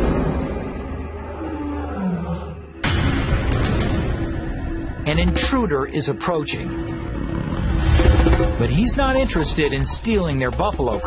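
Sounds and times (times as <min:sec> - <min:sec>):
distant lion roaring: 0:06.8 - 0:08.6.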